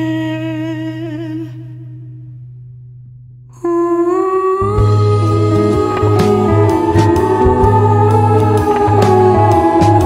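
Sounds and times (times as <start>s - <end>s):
slow sad song: 0.0s - 10.0s
loud low bass notes: 4.6s - 10.0s
low drone: 4.6s - 10.0s.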